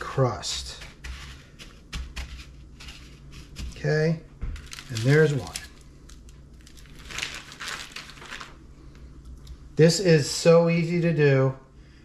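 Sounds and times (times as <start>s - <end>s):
plastic packaging crinkling: 4.5s - 8.6s.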